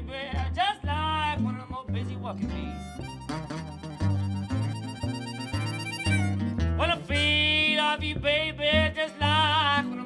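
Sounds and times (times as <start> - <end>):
acoustic guitar: 0.0 - 10.0
upright bass plucking: 0.0 - 10.0
harmonica held note: 2.8 - 6.6.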